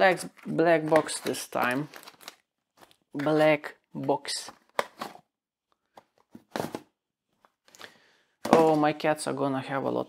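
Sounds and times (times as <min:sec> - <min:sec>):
paper packaging rustling: 0:00.0 - 0:03.5.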